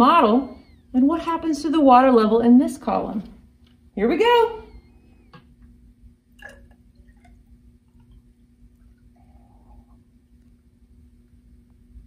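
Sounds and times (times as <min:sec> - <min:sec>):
water trickling: 0:06.3 - 0:09.3
water drips and clicks: 0:06.4 - 0:07.4.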